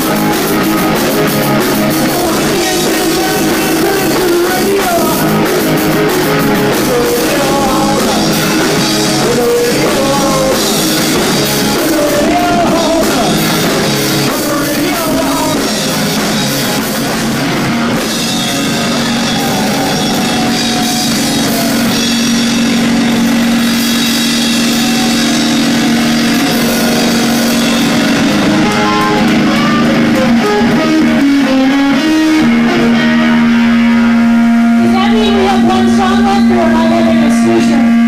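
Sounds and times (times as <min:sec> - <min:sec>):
drum kit: 0:00.0 - 0:38.0
electric guitar: 0:00.0 - 0:38.0.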